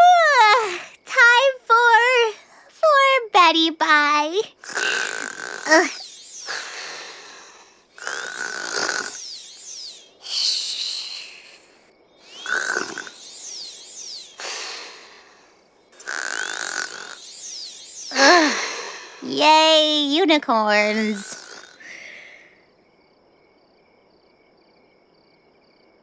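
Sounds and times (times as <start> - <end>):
cartoon snoring: 4.6 - 9.2, 12.3 - 13.2, 14.3 - 15.4, 16.0 - 17.2, 18.1 - 19.3, 21.0 - 22.4
whistling breath: 4.6 - 19.3, 21.3 - 22.6.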